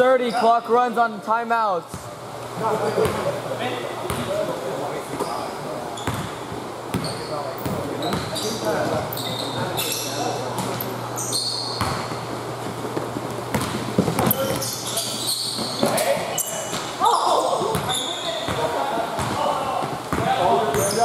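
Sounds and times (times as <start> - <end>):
steady low hum: 1.1 - 17.8
basketball bouncing on court floor: 4.1 - 4.4, 6.0 - 9.0, 11.7 - 16.9, 17.6 - 21.0
sneaker squeaks: 5.1 - 21.0.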